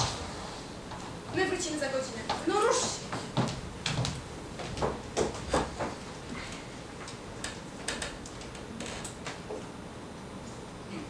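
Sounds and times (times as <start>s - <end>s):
footsteps on wooden stage floor: 2.2s - 6.0s.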